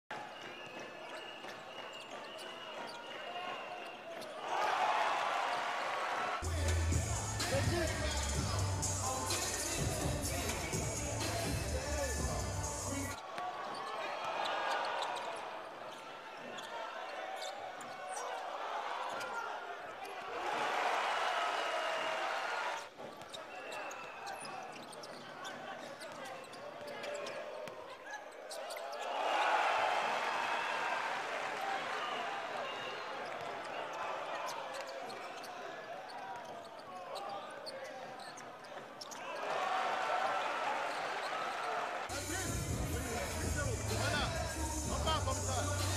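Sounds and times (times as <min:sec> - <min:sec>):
crowd chatter: 0:06.3 - 0:30.6, 0:31.6 - 0:45.9
music with heavy bass beat: 0:06.4 - 0:13.2, 0:42.1 - 0:45.9.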